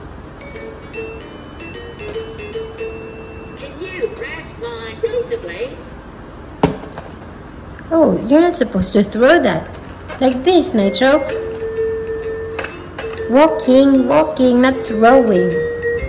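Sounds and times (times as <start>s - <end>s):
toy knocking onto floor: 6.6s - 7.3s.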